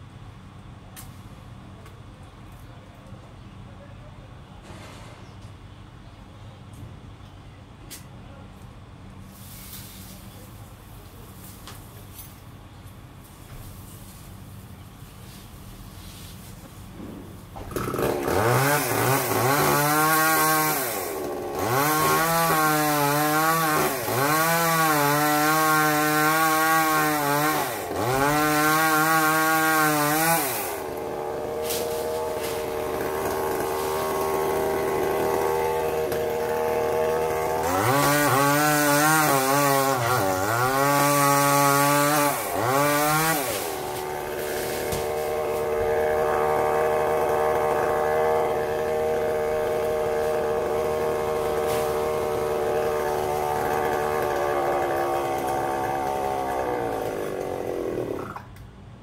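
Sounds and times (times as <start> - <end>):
chainsaw cutting wood: 17.5 - 58.6.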